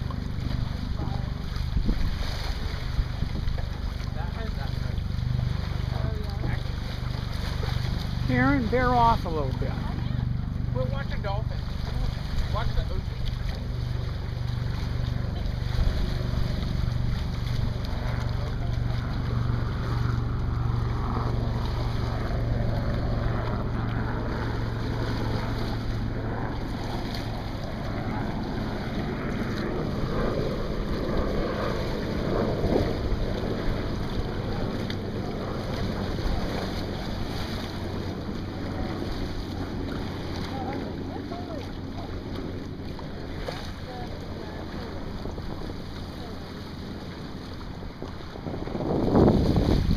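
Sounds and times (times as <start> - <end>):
wind on microphone: 0.0 - 10.0, 10.7 - 49.9
low steady hum: 0.0 - 49.9
water washing along hulls: 0.0 - 49.9.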